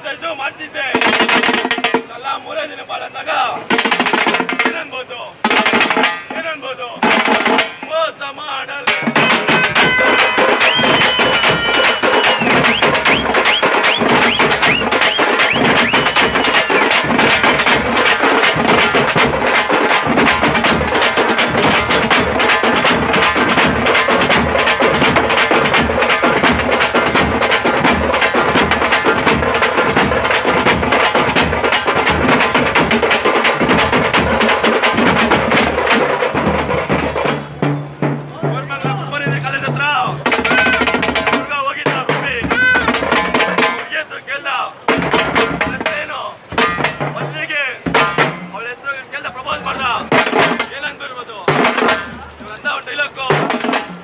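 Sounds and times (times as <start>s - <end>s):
drum band playing: 0.8s - 2.3s, 3.5s - 54.0s.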